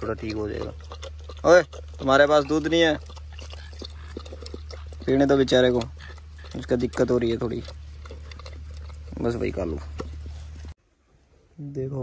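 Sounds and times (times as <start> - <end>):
dog lapping from bowl: 0.0 - 10.7.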